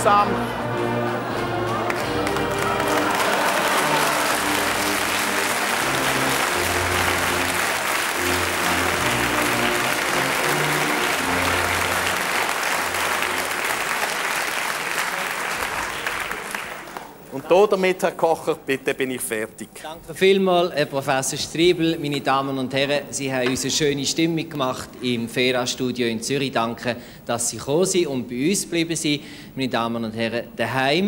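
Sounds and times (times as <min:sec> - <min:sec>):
background music with held notes: 0:00.0 - 0:14.2
audience applause: 0:00.4 - 0:17.2.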